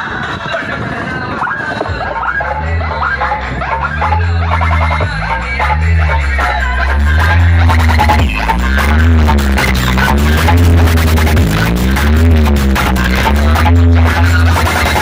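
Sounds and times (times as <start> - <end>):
loud electronic dance music: 0.0 - 15.0
sliding synth tone: 2.1 - 15.0.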